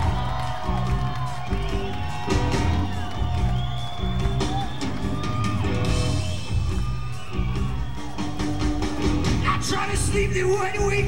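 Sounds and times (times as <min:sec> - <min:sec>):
bass and drums: 0:00.0 - 0:11.0
crowd whooping: 0:00.0 - 0:11.0.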